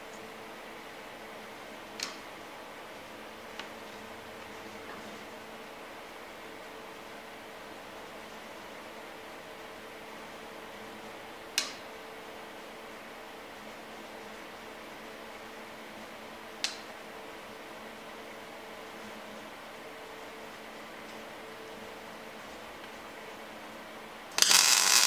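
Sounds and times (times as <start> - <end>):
machine cooling fan humming: 0.0 - 25.0.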